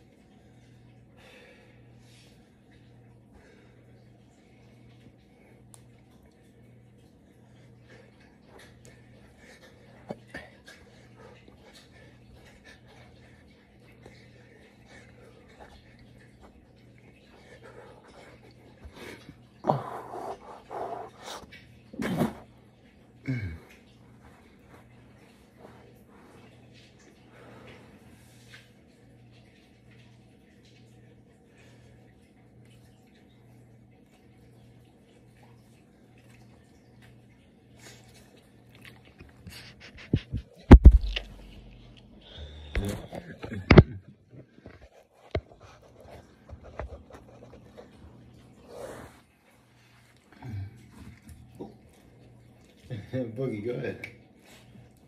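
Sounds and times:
phone rubbing against microphone: 39.6s - 40.6s.

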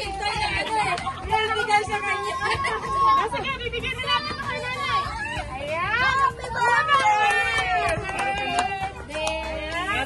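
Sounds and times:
excited voices talking: 0.0s - 10.0s.

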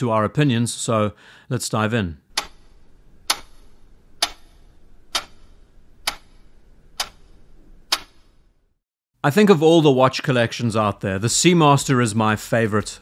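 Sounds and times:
clock-like ticking: 2.3s - 8.2s.

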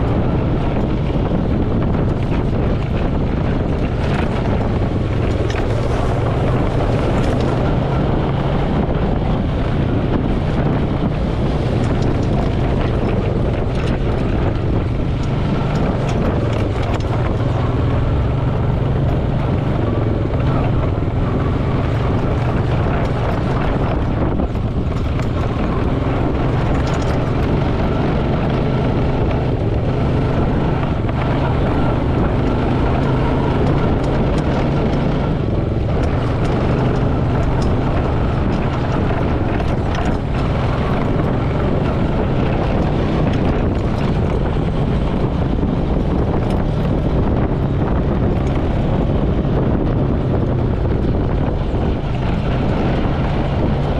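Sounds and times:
atv engine droning: 0.0s - 53.9s
wind rumble on microphone: 0.0s - 53.9s.

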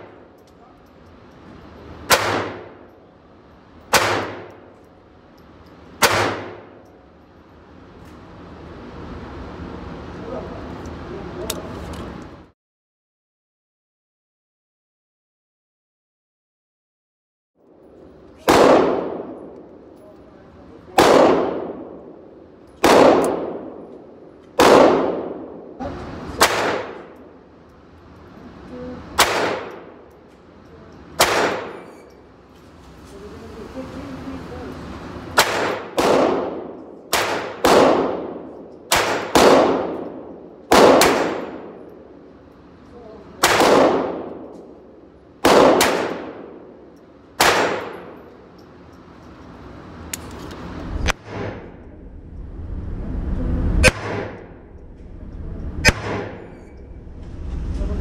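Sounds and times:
pistol shots in indoor range: 0.0s - 10.2s, 17.6s - 32.6s, 35.2s - 50.4s, 51.0s - 52.0s, 53.7s - 54.9s, 55.8s - 56.9s.

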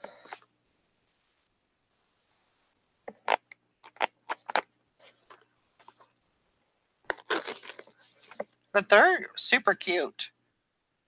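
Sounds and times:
boots crackling and rustling: 7.1s - 8.4s.

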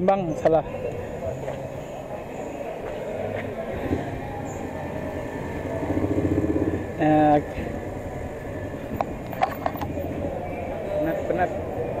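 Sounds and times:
vehicle engines running: 0.0s - 12.0s.

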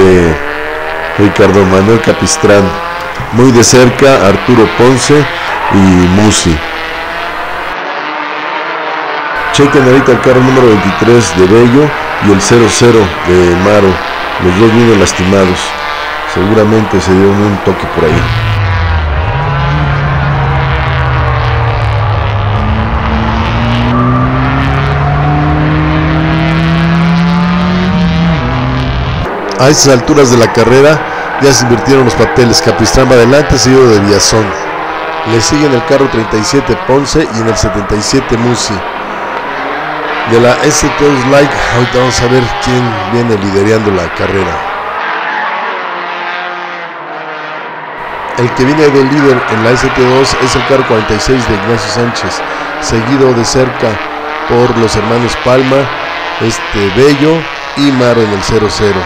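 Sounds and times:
race car engine at high revs: 0.0s - 59.0s.

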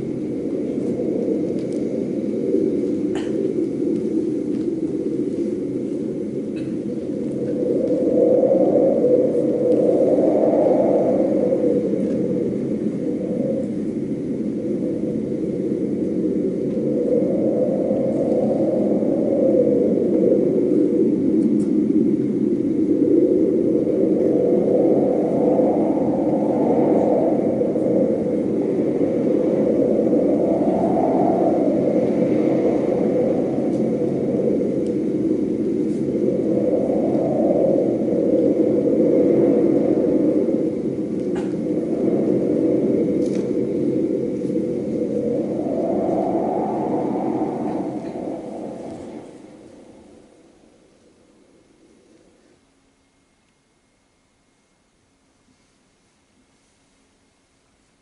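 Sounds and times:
low rumbling drone: 46.3s - 52.0s.

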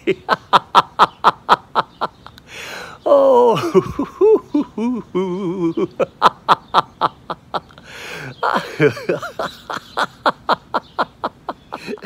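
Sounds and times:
man laughing in short bursts: 3.1s - 12.0s.

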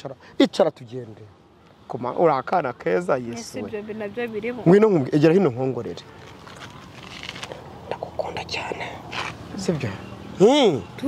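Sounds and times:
person whispering: 7.8s - 9.1s.

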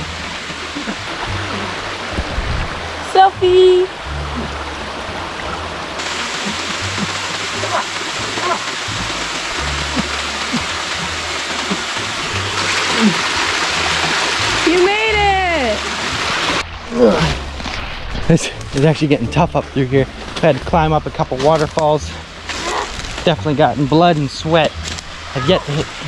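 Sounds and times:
waterfall splashing: 0.0s - 26.0s.

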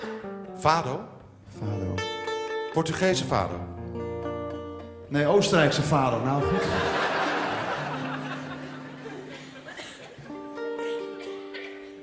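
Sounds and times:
acoustic guitar plucked notes: 0.0s - 12.0s
audience laughter: 5.6s - 12.0s.

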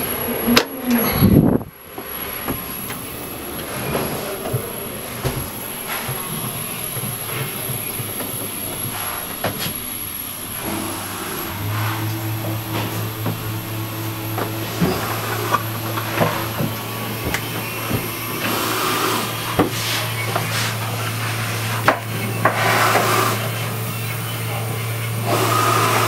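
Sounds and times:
low machine hum: 0.0s - 26.0s.

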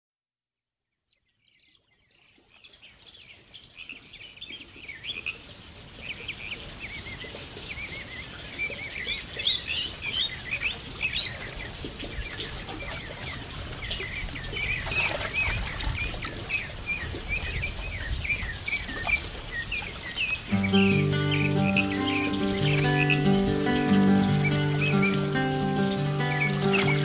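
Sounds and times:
small birds chirping: 6.0s - 27.0s.

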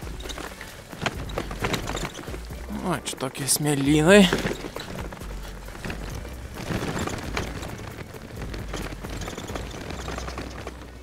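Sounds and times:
bicycle tyres crunching through sand: 0.0s - 11.0s
bike rattling: 0.0s - 11.0s.

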